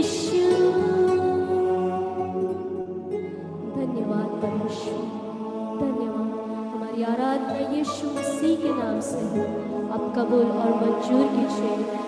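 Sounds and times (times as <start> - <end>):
woman singing worship song: 0.0 - 2.4, 3.6 - 12.0.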